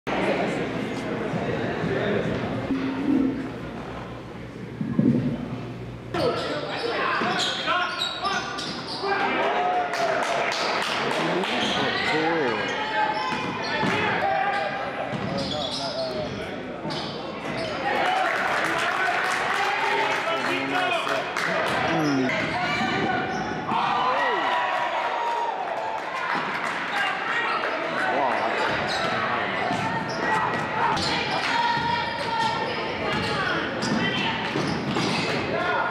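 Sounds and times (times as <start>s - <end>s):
voices echoing in gym: 0.1s - 35.9s
sneakers squeaking: 4.8s - 9.3s, 11.2s - 17.9s, 21.8s - 23.7s, 28.4s - 35.5s.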